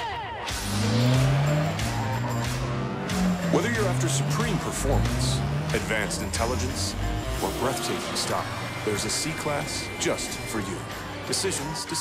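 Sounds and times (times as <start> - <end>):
music: 0.0 - 12.0
car engine accelerating: 0.4 - 12.0.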